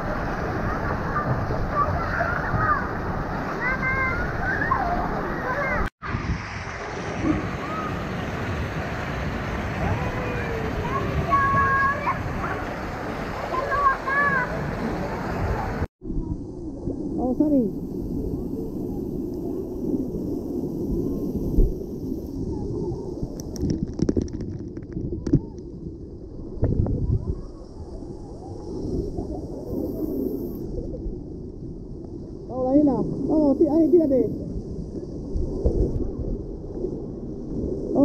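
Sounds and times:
pool water splashing: 0.0 - 15.9
water pouring: 23.3 - 25.4.

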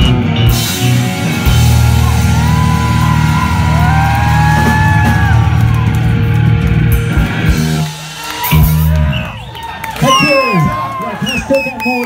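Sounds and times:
punk rock band playing loud: 0.0 - 9.6.

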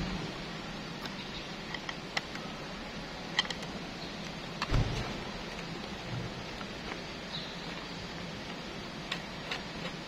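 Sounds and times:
steady background noise: 0.0 - 10.0
dull thump: 4.7 - 5.2.

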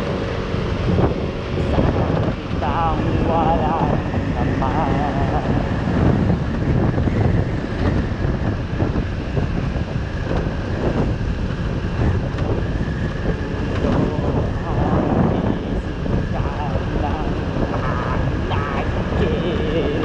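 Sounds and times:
scooter engine running: 0.0 - 20.0
wind rushing over microphone: 0.0 - 20.0.

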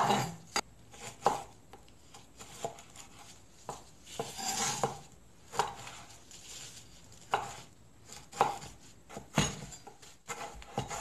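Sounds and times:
knife chopping on wooden board: 0.0 - 6.2, 7.1 - 11.0.

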